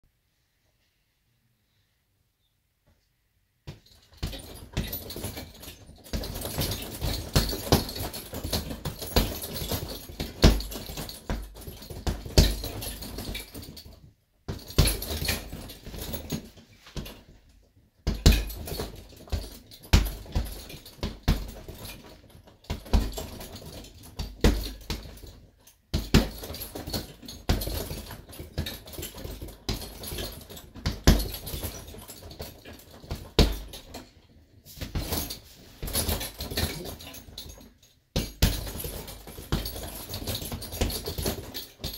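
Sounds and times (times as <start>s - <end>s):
punches thudding on heavy bag: 3.7s - 17.3s, 18.0s - 34.0s, 34.7s - 41.9s
chain and swivel jingling: 3.8s - 17.2s, 18.3s - 41.9s.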